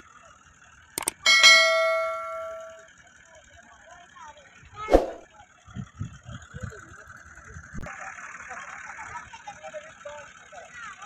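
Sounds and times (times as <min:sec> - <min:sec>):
tractor engine running: 0:00.1 - 0:04.6.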